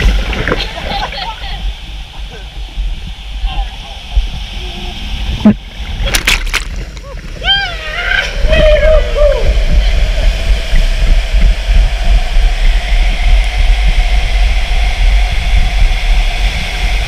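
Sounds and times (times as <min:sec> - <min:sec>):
faint steady hum: 0:00.0 - 0:17.0
raft rushing through water slide: 0:00.0 - 0:17.0.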